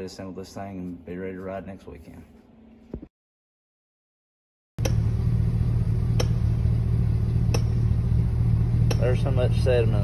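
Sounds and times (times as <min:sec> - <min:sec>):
low machine hum: 0:04.8 - 0:10.0.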